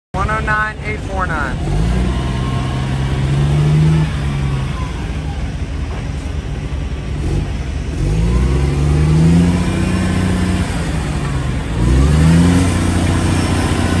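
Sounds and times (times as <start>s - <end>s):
diesel truck engine revving: 0.2s - 14.0s.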